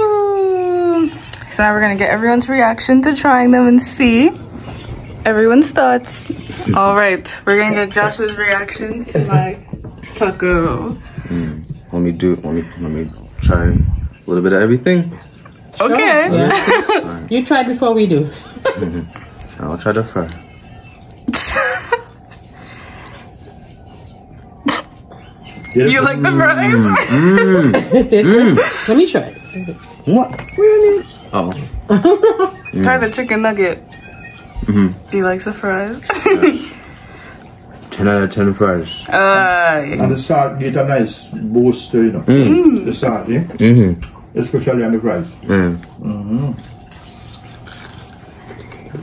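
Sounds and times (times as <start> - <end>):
low room noise: 0.0 - 49.0
person chewing fries: 11.0 - 13.4, 14.0 - 17.3, 18.6 - 25.8, 26.8 - 39.1, 45.2 - 49.0.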